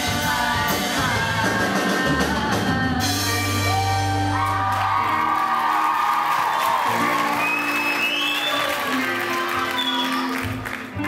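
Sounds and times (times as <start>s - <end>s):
audience applauding and cheering: 3.8s - 11.0s
high whistle: 7.2s - 8.8s, 9.7s - 10.3s.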